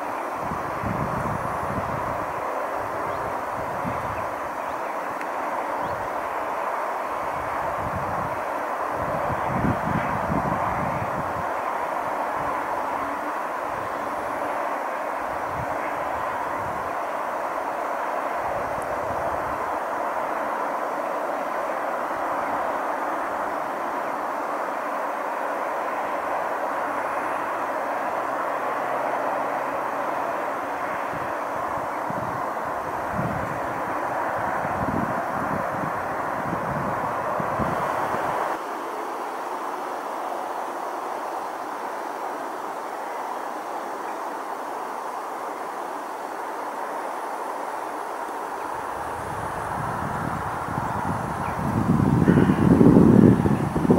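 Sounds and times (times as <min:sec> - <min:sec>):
wind buffeting microphone: 0:00.0 - 0:38.8, 0:48.3 - 0:53.9
steady hiss: 0:00.0 - 0:53.9.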